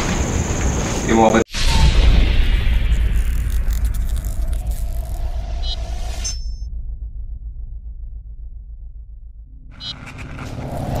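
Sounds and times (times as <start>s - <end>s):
low pulsing rumble: 1.6s - 11.0s.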